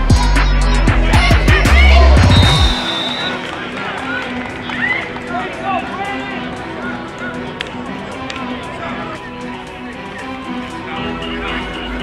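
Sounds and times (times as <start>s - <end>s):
people talking and calling out: 0.0s - 12.0s
faint music: 0.7s - 12.0s.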